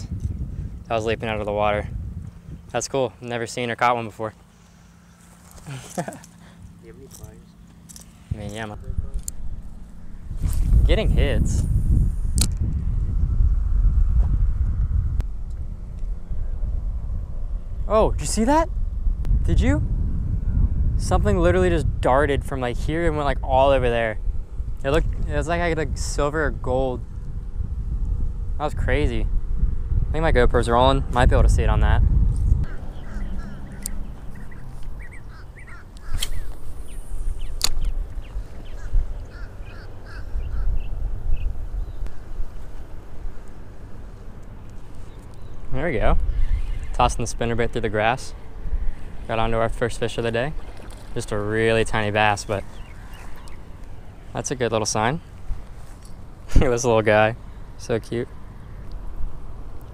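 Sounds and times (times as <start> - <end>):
wind buffeting microphone: 0.0 - 3.6, 8.2 - 59.9
birds calling: 4.4 - 11.4, 32.5 - 49.4, 50.0 - 59.1
sharp click: 12.3 - 12.6, 36.0 - 36.6, 37.5 - 38.0
sharp clicks: 37.6 - 38.0.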